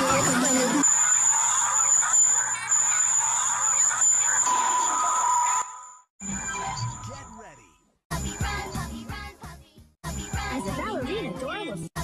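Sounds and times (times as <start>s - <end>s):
overlapping distorted video soundtracks: 0.0s - 5.5s
high-pitched whine: 0.0s - 7.4s.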